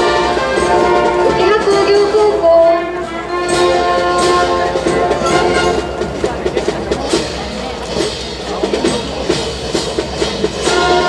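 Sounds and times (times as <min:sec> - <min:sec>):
brass phrase: 0:00.0 - 0:09.4, 0:10.5 - 0:11.0
marching drum beat: 0:00.0 - 0:11.0
wind band playing a march: 0:00.0 - 0:11.0.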